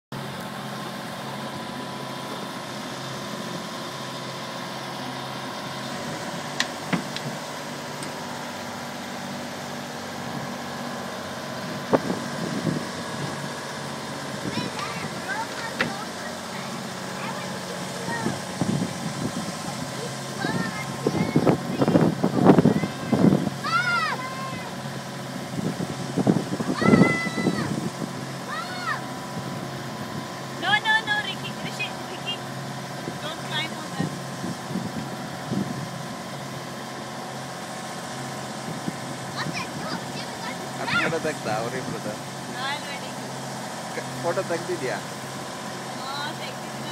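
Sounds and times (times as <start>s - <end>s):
boat engine running: 0.1s - 46.9s.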